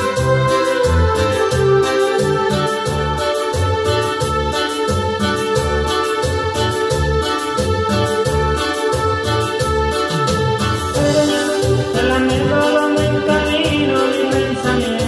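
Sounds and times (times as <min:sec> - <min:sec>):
keyboard dance music: 0:00.0 - 0:15.0.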